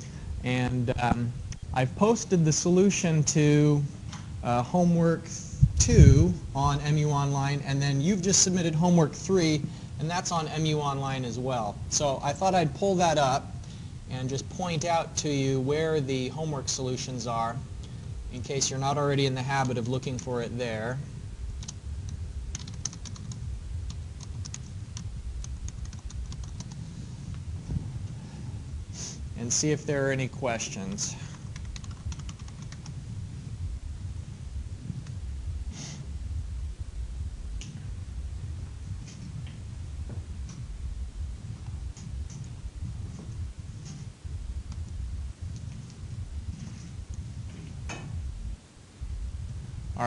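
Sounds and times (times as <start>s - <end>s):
low room rumble: 0.0s - 50.0s
computer keyboard typing: 22.5s - 24.7s, 25.4s - 26.8s, 31.3s - 33.0s.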